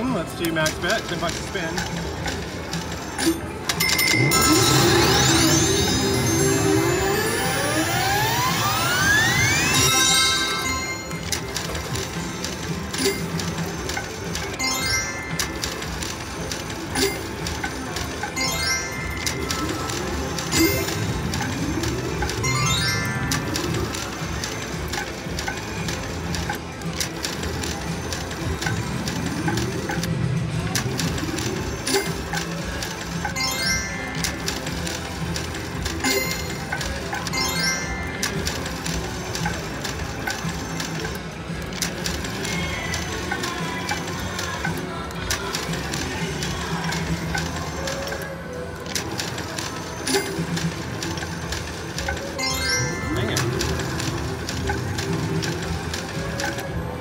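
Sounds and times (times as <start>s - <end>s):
slot machine reel spinning: 0.0s - 57.0s.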